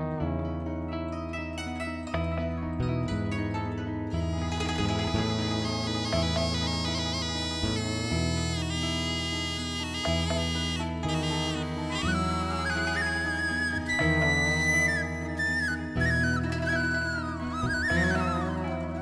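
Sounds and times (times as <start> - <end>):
rippling plucked notes: 0.0 - 19.0
low drone: 4.1 - 19.0
sliding wind instrument melody: 4.1 - 19.0.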